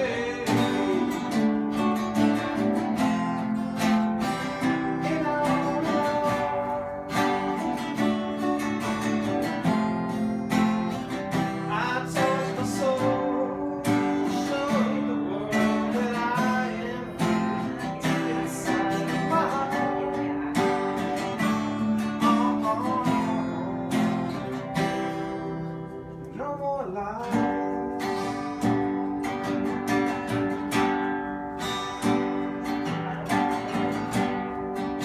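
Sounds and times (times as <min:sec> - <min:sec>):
acoustic guitars strumming chords: 0:00.0 - 0:35.0.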